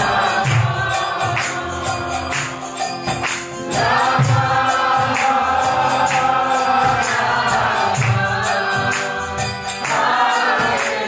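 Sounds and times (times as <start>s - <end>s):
group chanting together: 0.0s - 11.0s
tambourine jingles: 0.0s - 11.0s
hand clapping: 0.1s - 11.0s.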